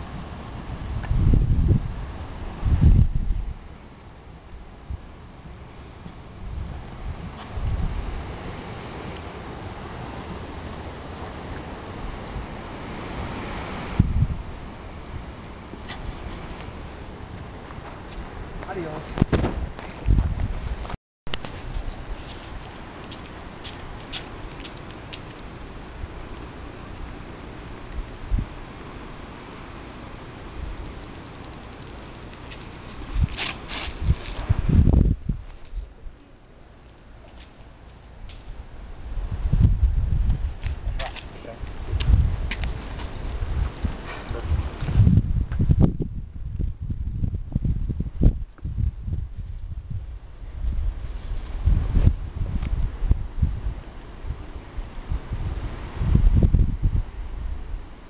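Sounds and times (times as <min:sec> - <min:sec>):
wind buffeting microphone: 0:00.0 - 0:28.8, 0:30.2 - 0:36.5, 0:37.6 - 0:58.0.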